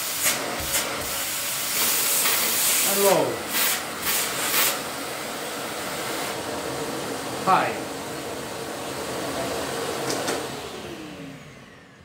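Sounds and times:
vacuum cleaner running: 0.0s - 12.0s.

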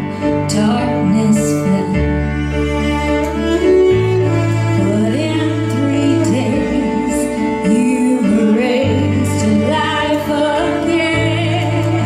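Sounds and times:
cello bowed low notes: 0.0s - 12.0s
woman singing: 0.4s - 2.2s, 4.8s - 12.0s.

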